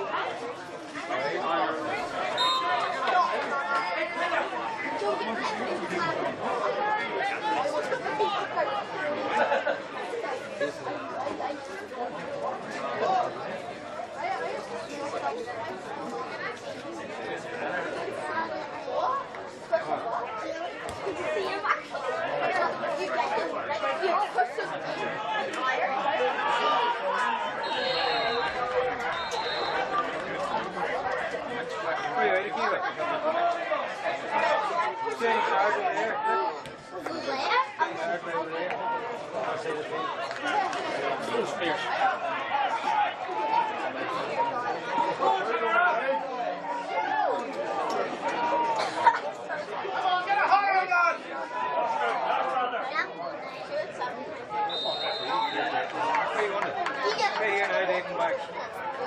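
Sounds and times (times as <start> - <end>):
spectators chattering: 0.0 - 59.0.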